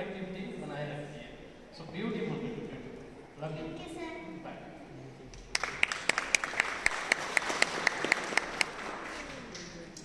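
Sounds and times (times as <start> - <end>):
close hands clapping steadily: 5.3 - 10.0
audience applauding: 5.5 - 10.0.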